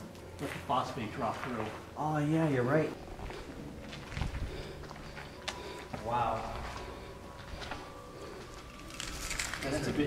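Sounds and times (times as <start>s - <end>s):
footsteps on concrete floor: 0.2s - 2.2s, 2.9s - 9.6s.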